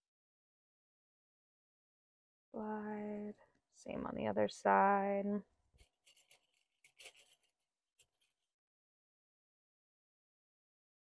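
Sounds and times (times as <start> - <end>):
hand rubbing over fabric: 5.8 - 7.5.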